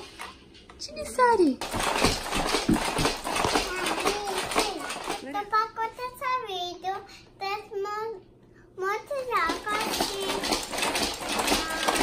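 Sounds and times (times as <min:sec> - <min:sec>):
baby bouncer knocking and rattling: 0:01.6 - 0:05.3, 0:09.4 - 0:12.0.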